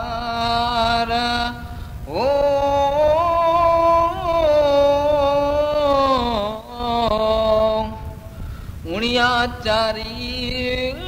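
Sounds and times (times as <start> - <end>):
man singing a devotional hymn: 0.0 - 11.0
singer's breath: 1.6 - 2.1, 8.3 - 8.8.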